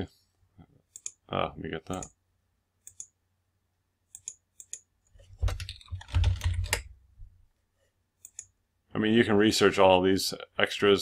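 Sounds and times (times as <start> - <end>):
mouse clicks: 4.1 - 4.9, 8.2 - 8.6
keyboard typing: 4.1 - 6.9.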